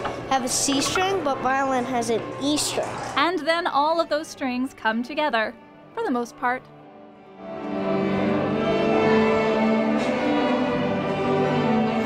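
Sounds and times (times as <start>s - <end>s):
string orchestra playing slow chords: 6.8s - 12.0s.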